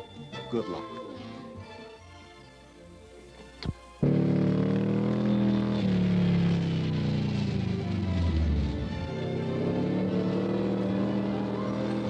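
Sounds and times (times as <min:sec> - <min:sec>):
dune buggy engine running hard: 0:04.0 - 0:12.0.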